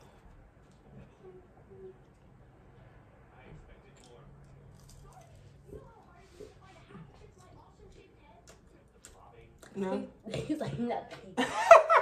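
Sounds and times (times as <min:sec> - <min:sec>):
faint eating sounds: 0:00.0 - 0:11.4
low steady hum: 0:00.0 - 0:12.0.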